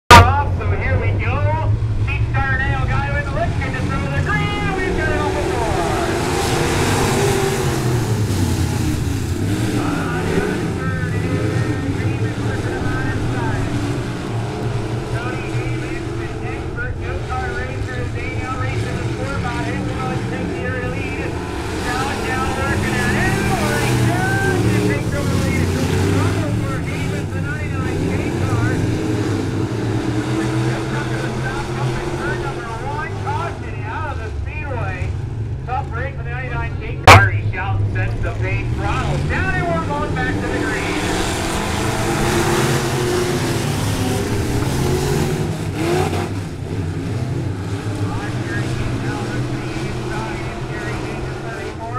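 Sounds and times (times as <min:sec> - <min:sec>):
race car engines droning: 0:00.1 - 0:51.9.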